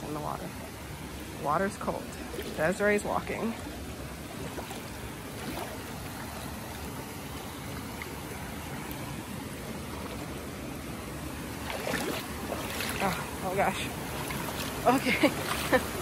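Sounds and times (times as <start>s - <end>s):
creek water running over rocks: 0.0s - 16.0s.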